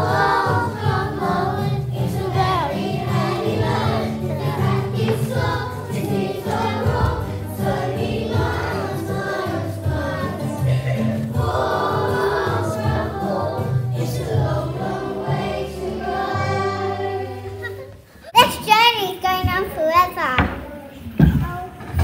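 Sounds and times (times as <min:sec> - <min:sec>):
backing music with bass line: 0:00.0 - 0:17.7
children singing: 0:00.0 - 0:18.0.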